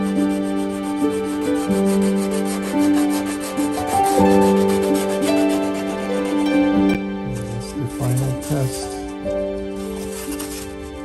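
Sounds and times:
hands rubbing wood: 0.0s - 11.0s
slow sustained music chords: 0.0s - 11.0s.

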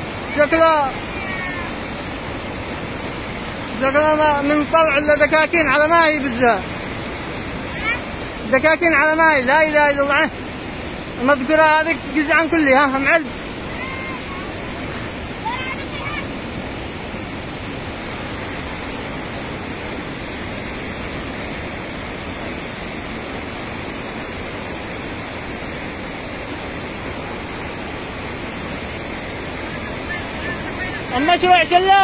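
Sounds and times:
torrent of rushing water: 0.0s - 32.0s.

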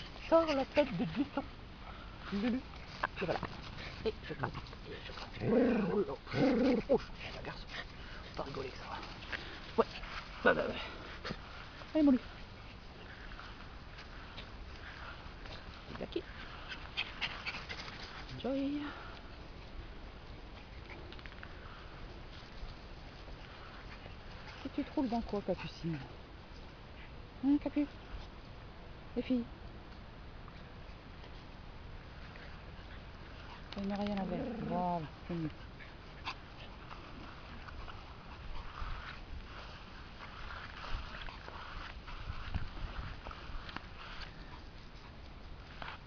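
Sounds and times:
small dog panting: 0.0s - 19.8s, 20.4s - 26.2s, 30.5s - 46.0s.

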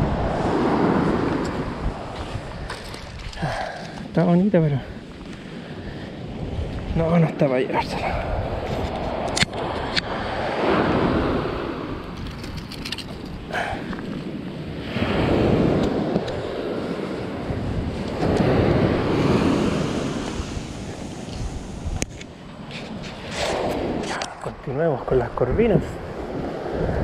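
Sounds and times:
ocean surf washing up beach: 0.0s - 27.0s
wind buffeting microphone: 0.0s - 27.0s.

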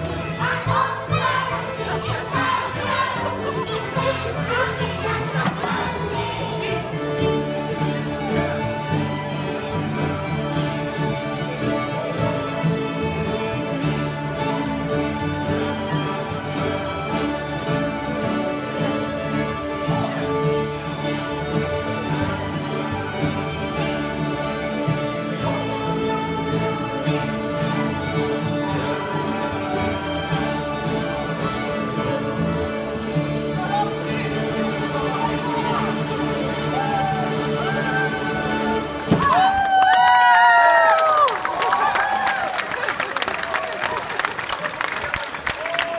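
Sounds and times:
fiddles playing folk tune: 0.0s - 45.9s.

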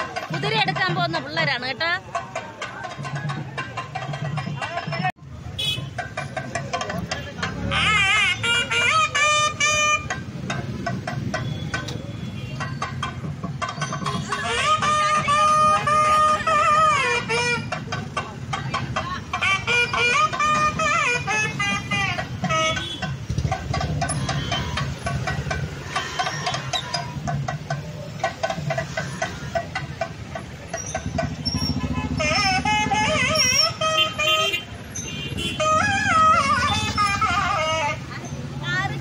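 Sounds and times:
motorbikes and scooters running: 0.0s - 39.0s
horn toots: 7.4s - 10.3s, 19.3s - 27.1s, 31.0s - 38.1s.

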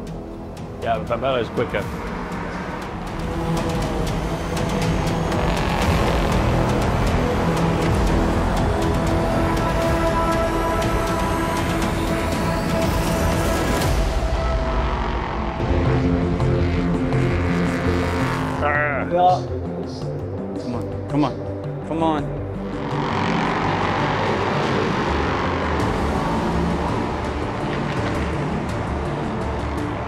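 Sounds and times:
background music: 0.0s - 30.0s
race car engine accelerating: 22.6s - 29.8s.

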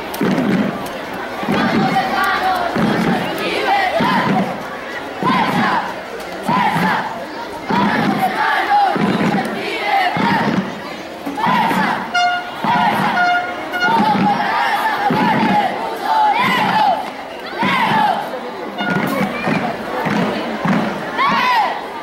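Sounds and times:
crowd noise: 0.0s - 22.0s
group shouting rhythmic chant: 1.4s - 4.6s, 5.2s - 22.0s.

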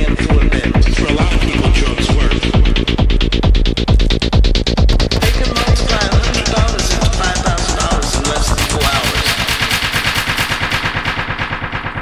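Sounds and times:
techno music: 0.0s - 12.0s
rapid percussive roll: 1.0s - 12.0s.

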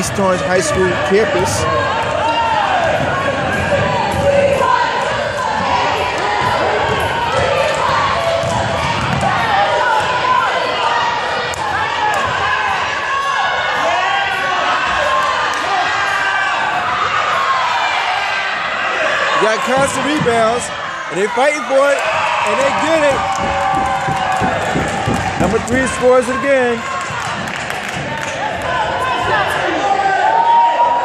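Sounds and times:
basketball bouncing on wooden court: 1.6s - 10.4s, 19.7s - 20.7s, 22.6s - 29.4s.

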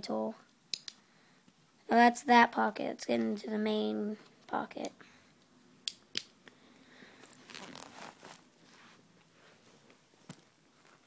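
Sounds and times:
sharp clicks: 0.7s - 1.0s
fabric bag rustling: 7.1s - 11.0s.

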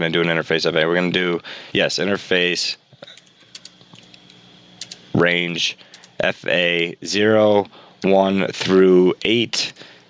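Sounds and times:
computer keyboard typing: 3.1s - 5.1s, 5.8s - 6.2s.

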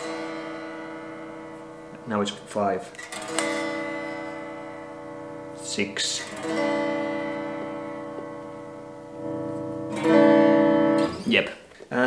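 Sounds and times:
electric guitar chord ringing: 0.0s - 11.5s.

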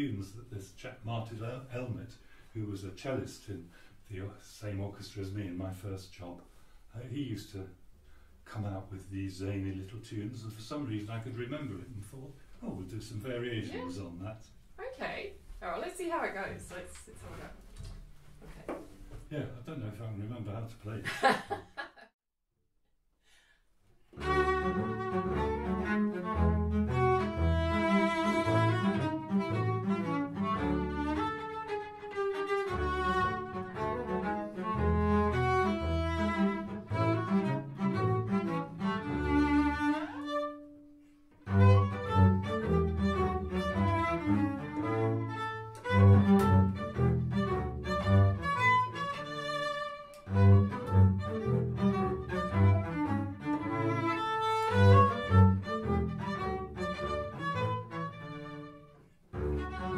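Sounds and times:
cello and double bass duet: 0.0s - 7.6s, 8.4s - 14.4s, 24.1s - 59.9s.

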